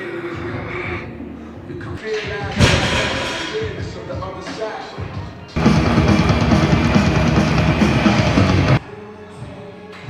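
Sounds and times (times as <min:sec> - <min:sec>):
loud slam with ring: 0:02.6 - 0:04.0.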